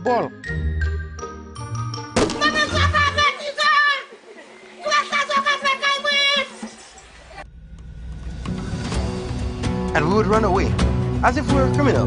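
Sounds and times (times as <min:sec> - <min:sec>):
background music: 0:00.0 - 0:03.4, 0:04.9 - 0:12.0
woman shouting: 0:02.3 - 0:04.2, 0:04.8 - 0:06.6.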